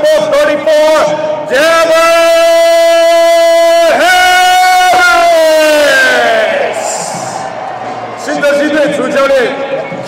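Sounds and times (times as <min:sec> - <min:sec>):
man shouting announcer style: 0:00.0 - 0:07.5, 0:08.2 - 0:10.0.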